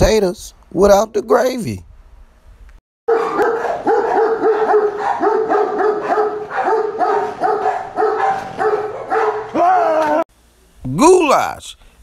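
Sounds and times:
dog barking rapidly: 3.1 - 9.6
dog drawn-out high call: 3.1 - 10.2.

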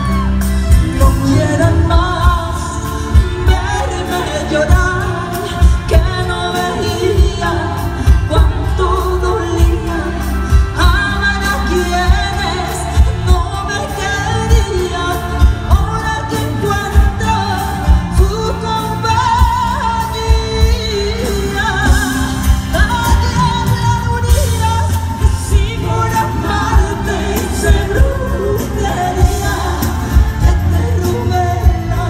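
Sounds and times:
woman singing with live band: 0.0 - 32.0
steady drum beat: 0.1 - 32.0.

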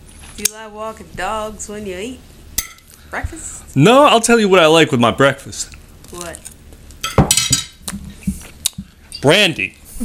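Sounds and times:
glass bottle clinks: 9.1 - 9.4.

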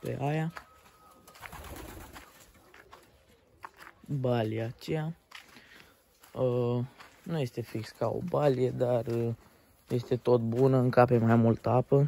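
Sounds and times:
pigeons cooing faintly: 0.0 - 4.9.

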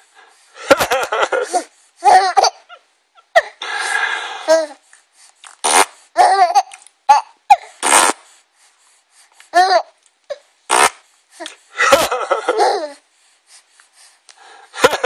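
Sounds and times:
baby laughing: 0.7 - 2.8, 11.8 - 13.0
baby breathy bursts: 3.5 - 6.3, 7.5 - 9.7.

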